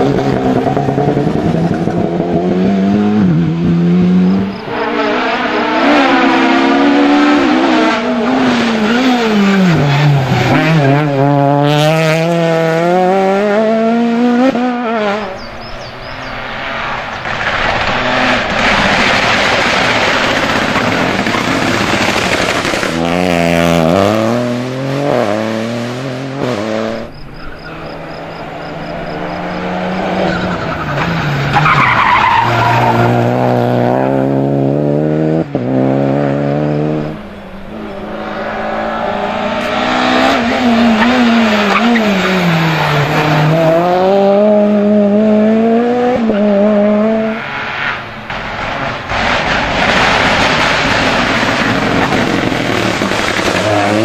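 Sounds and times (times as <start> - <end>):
rally car engines revving past: 0.0 - 54.0.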